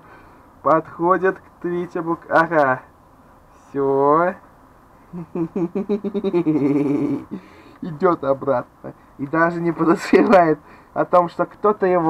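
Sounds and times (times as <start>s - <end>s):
man making wordless vocal sounds: 5.1s - 8.4s.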